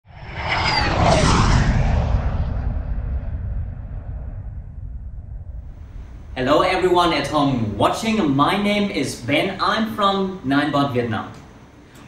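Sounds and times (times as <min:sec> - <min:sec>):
low rumbling whoosh: 0:00.0 - 0:08.6.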